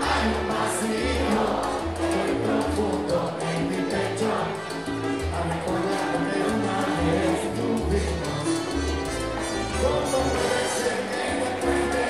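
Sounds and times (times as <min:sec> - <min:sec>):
voices singing together: 0:00.0 - 0:04.9, 0:05.8 - 0:08.5, 0:09.7 - 0:12.0
salsa band playing: 0:00.0 - 0:12.0.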